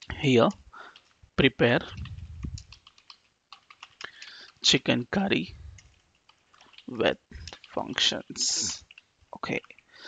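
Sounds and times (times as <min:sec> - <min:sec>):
typing on computer keyboard: 0:00.8 - 0:01.2, 0:01.9 - 0:04.6, 0:05.8 - 0:07.8.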